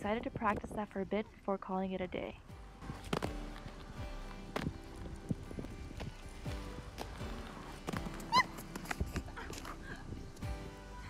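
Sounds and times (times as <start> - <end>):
instrumental background music: 1.8 - 11.0
skate wheels rolling on concrete: 2.8 - 10.8
loud skate squeak: 8.1 - 8.7.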